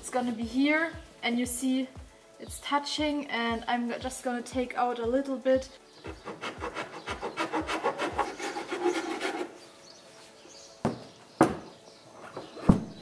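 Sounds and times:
hand file rasping: 0:06.0 - 0:09.6.

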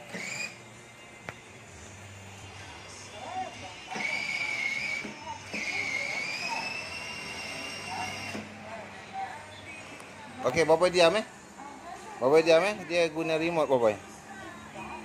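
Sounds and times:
electronic music from toy speaker: 0:03.9 - 0:08.4.

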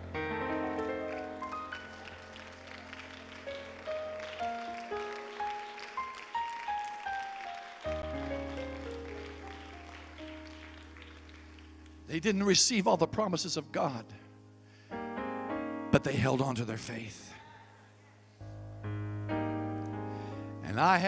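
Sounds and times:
soft slow keyboard music: 0:00.0 - 0:21.0.

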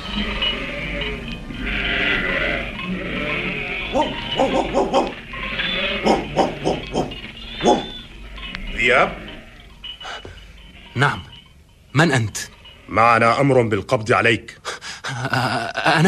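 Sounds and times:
sheep bleating: 0:00.0 - 0:09.6.

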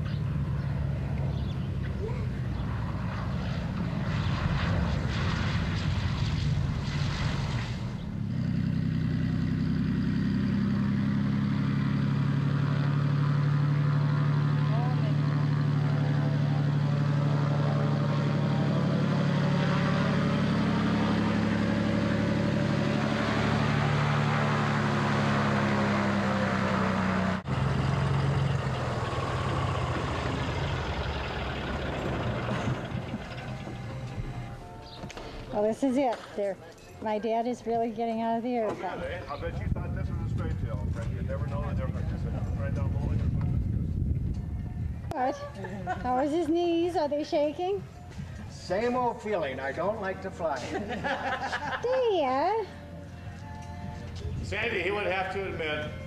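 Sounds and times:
propeller plane engine drone: 0:00.0 - 0:36.8, 0:37.4 - 0:56.0.

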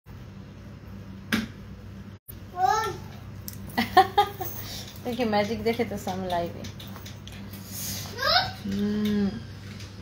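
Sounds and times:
low room hum: 0:00.1 - 0:10.0.

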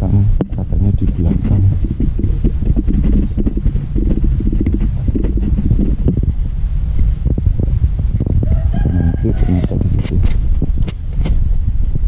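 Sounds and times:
wind buffeting microphone: 0:00.0 - 0:12.0
knocks and rustles: 0:00.4 - 0:06.4.

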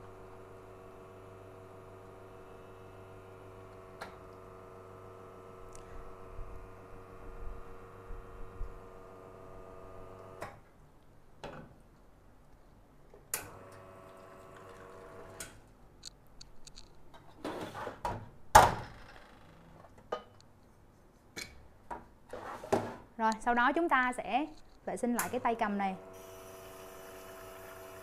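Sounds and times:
espresso machine pump humming: 0:26.0 - 0:28.0.

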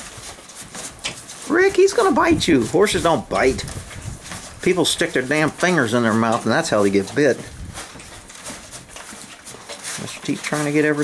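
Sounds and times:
horses eating grain: 0:00.0 - 0:11.0.

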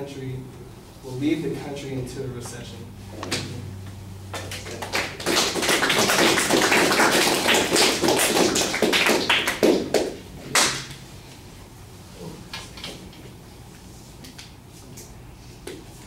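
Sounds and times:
audience clapping: 0:04.3 - 0:11.0.

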